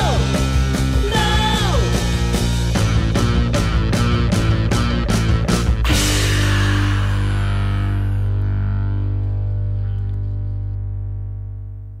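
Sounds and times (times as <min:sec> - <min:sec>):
garage rock chord ringing out: 0:00.0 - 0:11.8.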